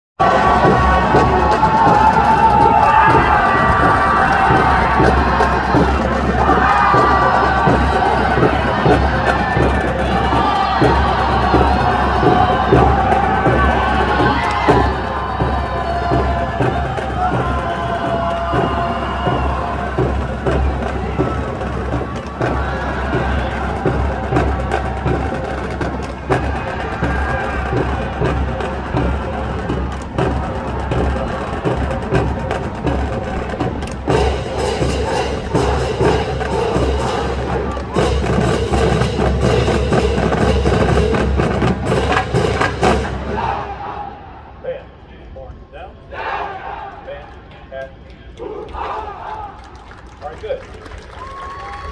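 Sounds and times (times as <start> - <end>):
marching drumline playing: 0.2 - 44.2
people shouting and cheering: 0.2 - 51.9.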